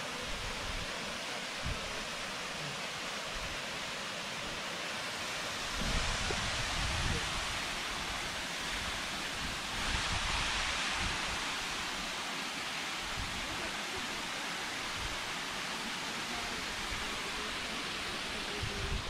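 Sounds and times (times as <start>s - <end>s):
waterfall rushing: 0.0s - 19.0s
wind on microphone: 5.6s - 12.1s, 18.4s - 19.0s.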